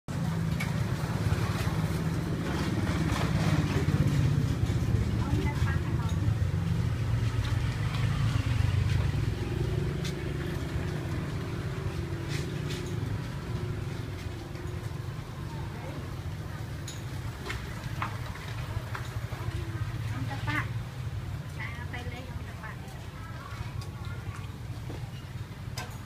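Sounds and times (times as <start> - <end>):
road traffic rumble: 0.1 - 26.0.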